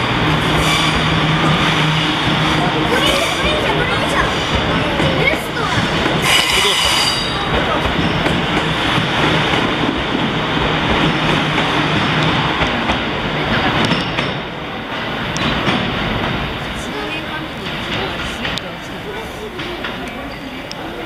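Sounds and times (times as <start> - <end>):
train wheels clattering over joints: 0.0 - 21.0
high wheel squeal: 0.5 - 3.6, 6.2 - 7.5.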